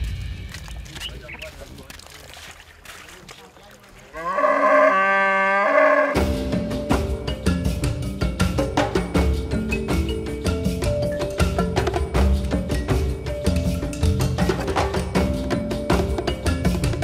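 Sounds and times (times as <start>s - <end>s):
background music with percussive hits: 0.0s - 1.2s, 6.2s - 17.0s
cow mooing: 4.1s - 6.2s.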